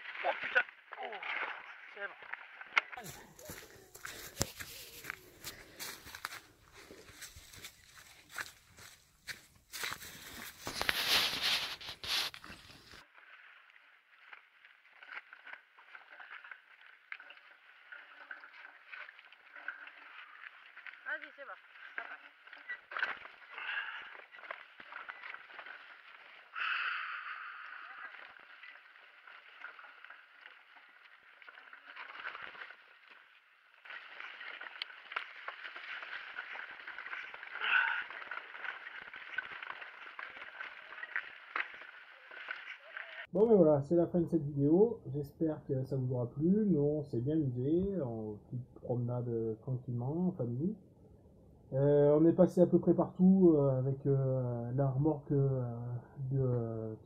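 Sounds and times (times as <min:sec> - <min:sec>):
bike tyres on leafy trail: 0:00.0 - 0:43.3
leaves crunching underfoot: 0:03.0 - 0:13.0, 0:27.5 - 0:43.3.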